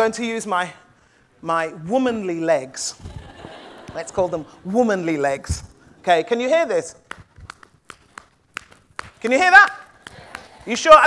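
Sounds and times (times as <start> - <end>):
hands slapping legs: 6.7 - 10.8.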